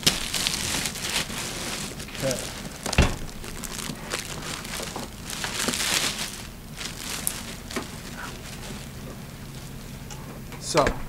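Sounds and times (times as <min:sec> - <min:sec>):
plastic wrapping crinkling: 0:00.0 - 0:10.1.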